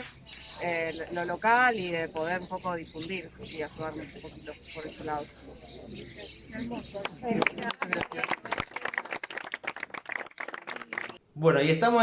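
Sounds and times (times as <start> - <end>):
hands clapping: 7.0 - 11.2.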